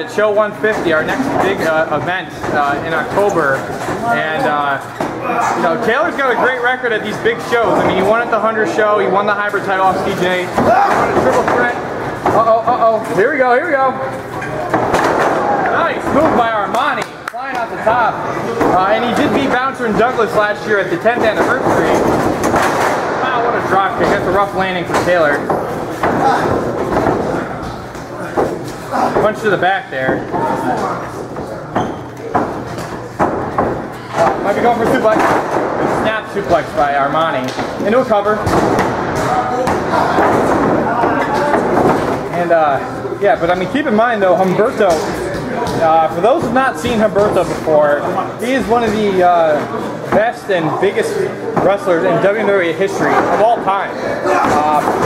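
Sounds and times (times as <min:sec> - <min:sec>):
low voices: 0:00.0 - 0:55.0.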